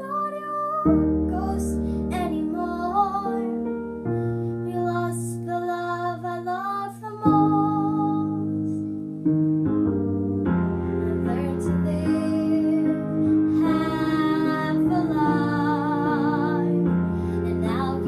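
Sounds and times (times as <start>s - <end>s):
girl singing a slow ballad: 0.0s - 9.0s, 10.8s - 18.0s
piano chords: 0.0s - 18.0s.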